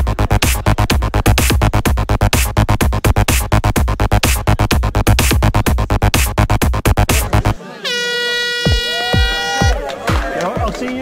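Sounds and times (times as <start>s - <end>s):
loud electronic music: 0.0s - 11.0s
crowd voices: 7.0s - 11.0s
air horn blast: 7.8s - 9.7s.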